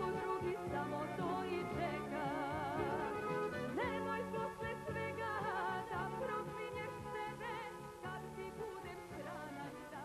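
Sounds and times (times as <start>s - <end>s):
instrumental accompaniment: 0.0s - 10.0s
woman singing with vibrato: 0.0s - 10.0s.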